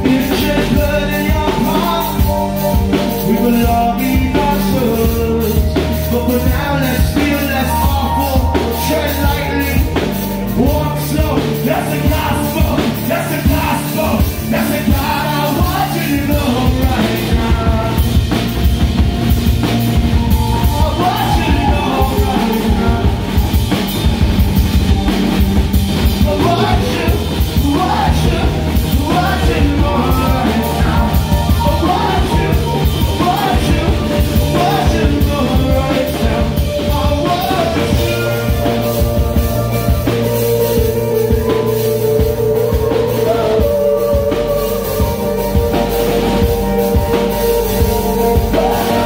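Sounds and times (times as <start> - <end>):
drum kit beat: 0.0 - 49.0
keyboard chords: 0.0 - 49.0
live band music: 0.0 - 49.0.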